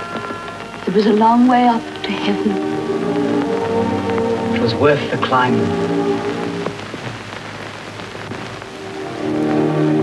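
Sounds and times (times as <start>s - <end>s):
orchestral chords: 0.0s - 6.8s
film soundtrack hiss and crackle: 0.0s - 10.0s.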